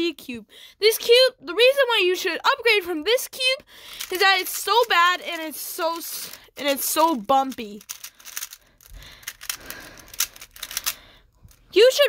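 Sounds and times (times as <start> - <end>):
puzzle cube clicking: 3.9 - 11.0.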